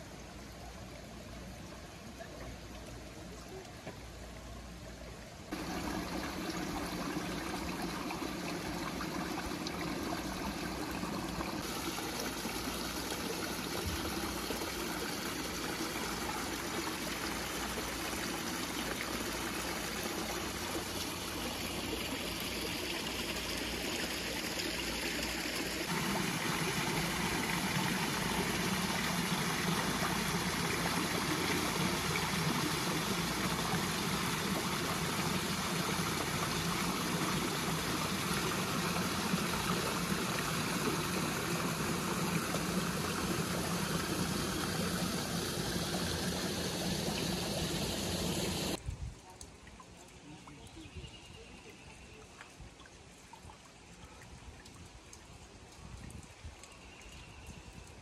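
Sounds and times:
cascade falling into pond: 0:05.5 - 0:48.8
small waterfalls splashing: 0:05.5 - 0:48.8.

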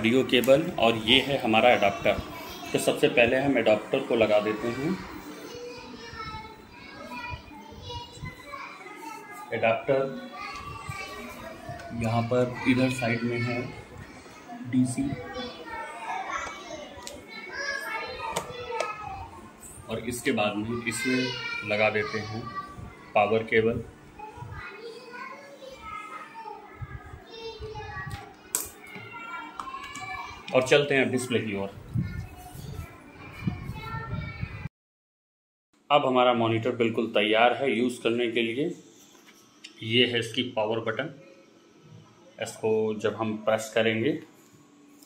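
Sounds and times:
children talking and playing: 0:00.0 - 0:34.7, 0:35.9 - 0:45.0.

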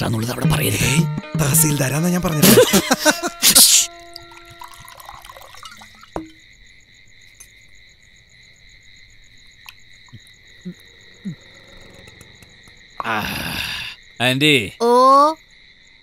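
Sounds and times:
insects trilling: 0:01.6 - 0:16.0.

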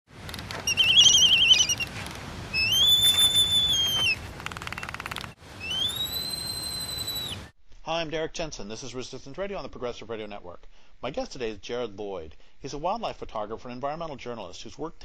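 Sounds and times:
high whistled tones: 0:02.6 - 0:04.2, 0:05.6 - 0:07.5.

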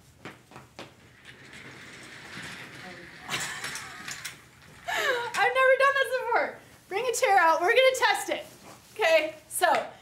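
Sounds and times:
office chair casters rolling: 0:00.4 - 0:07.2.

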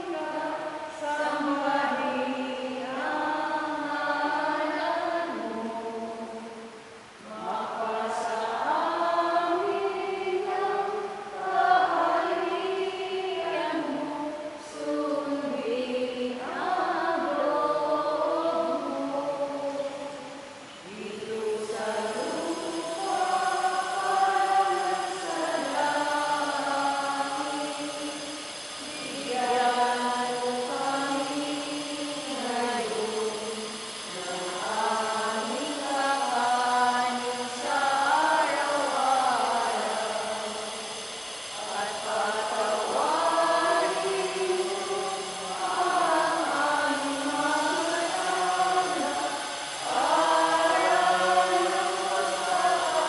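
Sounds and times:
person chanting a prayer: 0:00.0 - 0:53.0.

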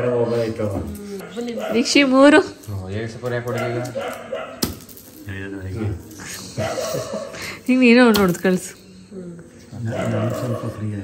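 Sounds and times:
man talking: 0:05.3 - 0:07.0, 0:09.7 - 0:11.0.

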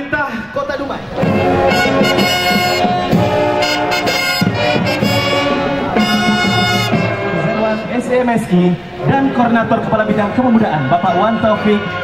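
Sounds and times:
marching band brass chords: 0:01.0 - 0:12.0.

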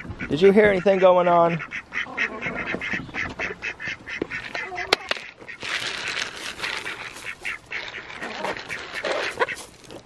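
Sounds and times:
chickens: 0:00.0 - 0:10.0
ducks quacking: 0:00.0 - 0:10.0
feed poured from a bucket: 0:05.6 - 0:09.8.

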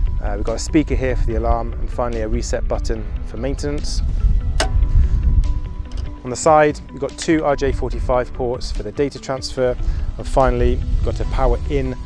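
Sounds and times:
music with deep bass: 0:00.0 - 0:12.0
sharp click: 0:04.6 - 0:04.9.

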